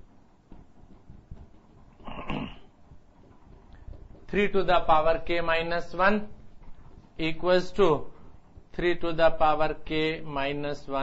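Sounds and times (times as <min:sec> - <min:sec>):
low room noise: 0:00.0 - 0:11.0
man's throaty vocal noise: 0:02.0 - 0:02.7.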